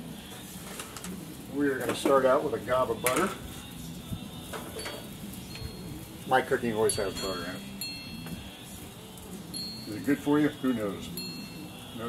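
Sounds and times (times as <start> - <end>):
utensils and pan clicking: 3.0 - 3.4, 4.4 - 5.8.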